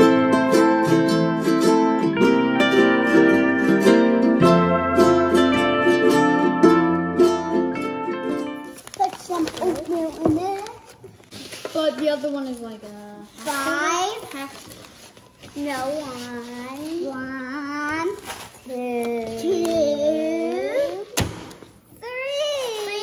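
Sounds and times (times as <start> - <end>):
plucked-string background music: 0.0 - 8.8
children speaking: 8.8 - 21.2, 21.9 - 23.0.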